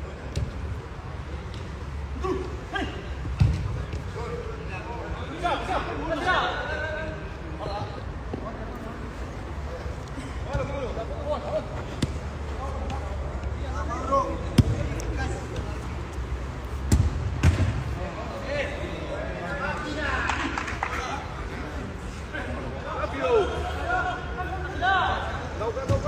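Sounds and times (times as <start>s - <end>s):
spectators chattering and shouting: 0.0s - 26.0s
football kick thuds: 3.4s - 4.1s, 16.9s - 17.8s.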